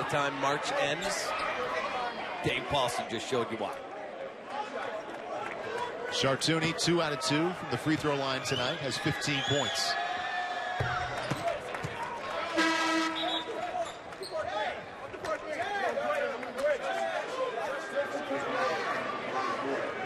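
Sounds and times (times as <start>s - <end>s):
short horn: 12.6s - 13.4s.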